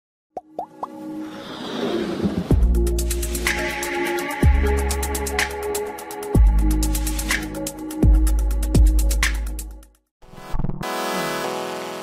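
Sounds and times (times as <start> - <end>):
electronic intro music: 0.7 - 9.8.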